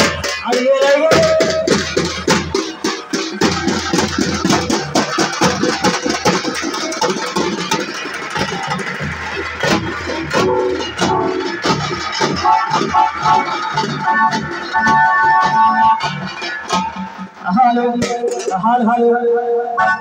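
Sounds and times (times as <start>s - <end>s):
sustained melody: 0.0s - 18.4s
procession drumming: 0.0s - 19.2s
amplified music from loudspeakers: 0.0s - 20.0s.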